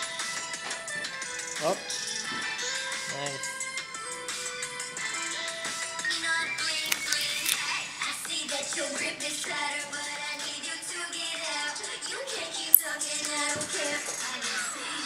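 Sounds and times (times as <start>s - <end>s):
upbeat pop song: 0.0s - 15.0s.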